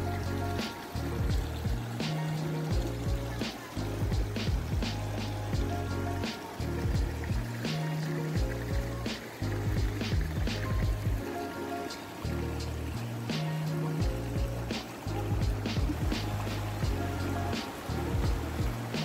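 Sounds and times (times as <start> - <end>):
held bass notes: 0.0 - 11.2, 12.2 - 19.0
regular percussion hits: 0.0 - 19.0.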